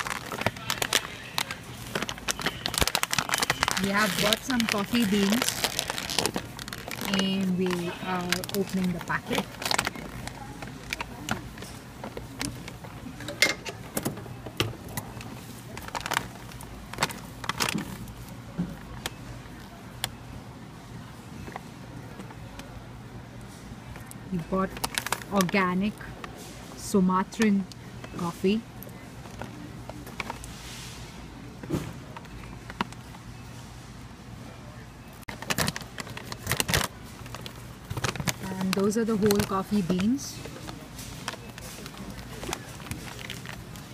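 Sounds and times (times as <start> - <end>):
plastic packet crackling: 0.0 - 13.0, 14.8 - 18.3, 24.0 - 26.2, 35.2 - 43.9.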